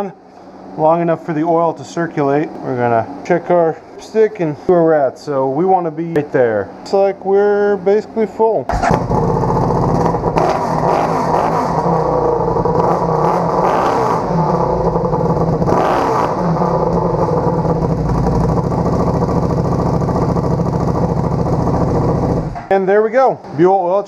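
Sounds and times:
motorcycle engine revving: 0:08.7 - 0:22.7.

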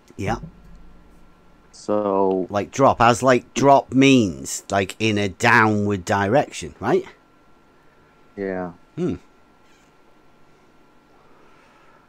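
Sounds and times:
faint background hum: 0:00.0 - 0:12.0
vocal sound with falling pitch: 0:00.2 - 0:02.1.

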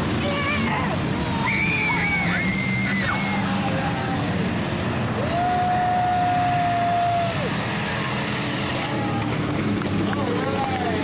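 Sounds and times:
racing car engines: 0:00.0 - 0:11.0.

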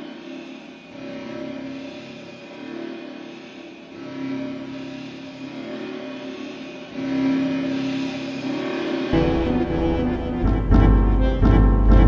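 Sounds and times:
held synthesizer notes: 0:09.2 - 0:12.0.

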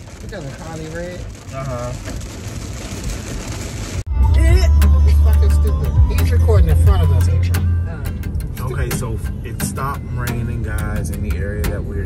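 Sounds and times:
rain pattering on car roof: 0:00.0 - 0:04.1
car low rumble: 0:00.0 - 0:12.0.

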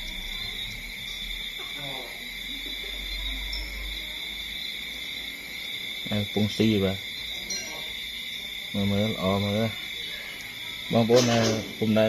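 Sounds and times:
night insects chirring: 0:00.0 - 0:12.0.

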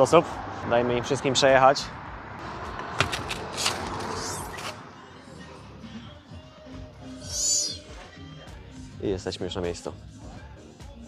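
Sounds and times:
street traffic: 0:00.0 - 0:09.3
faint background music: 0:00.0 - 0:11.0.

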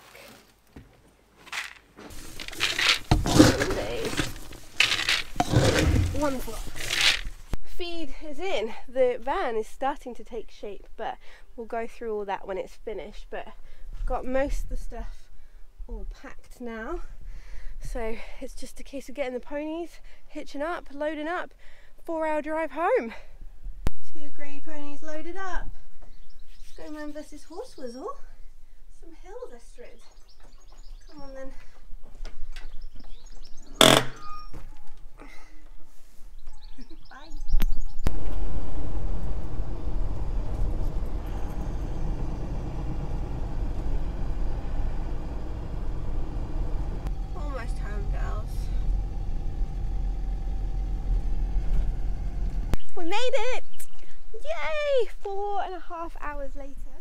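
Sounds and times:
horse hooves on trailer floor: 0:02.0 - 0:07.4, 0:39.1 - 0:52.8.

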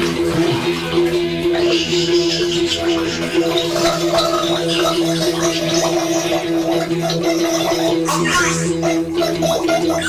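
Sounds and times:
water bubbling noises: 0:00.0 - 0:10.0.

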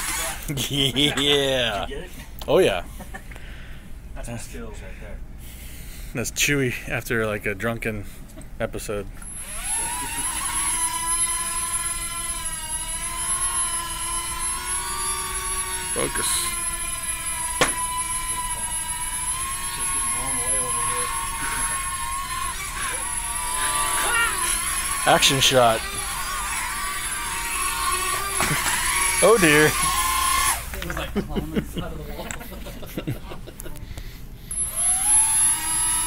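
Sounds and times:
toy drone propellers whining: 0:00.0 - 0:00.4, 0:09.2 - 0:30.8, 0:34.5 - 0:36.0.

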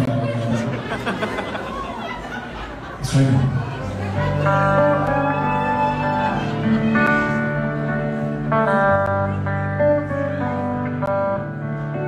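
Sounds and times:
electric guitar picked notes: 0:03.4 - 0:12.0.

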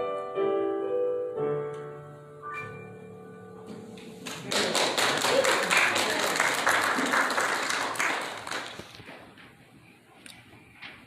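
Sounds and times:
congregation applauding: 0:04.2 - 0:09.0.

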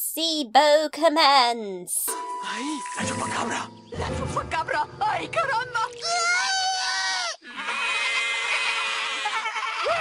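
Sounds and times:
cartoon voices screaming: 0:06.0 - 0:10.0.

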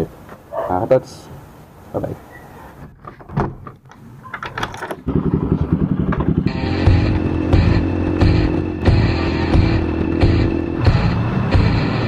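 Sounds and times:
motorcycle engine running: 0:05.1 - 0:12.0
loud music with steady beat: 0:06.5 - 0:12.0.

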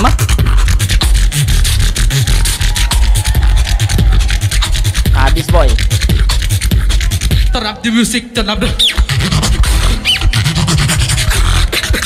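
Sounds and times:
beatboxing through speakers: 0:00.0 - 0:12.0.

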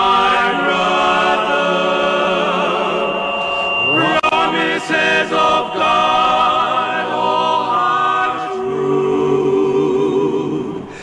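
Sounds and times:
male vocal group singing in harmony: 0:00.0 - 0:11.0.

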